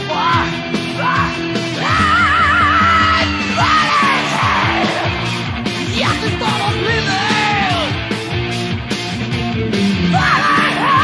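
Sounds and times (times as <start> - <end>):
heavy metal band playing: 0.0 - 11.0
sliding lead guitar line: 0.4 - 11.0.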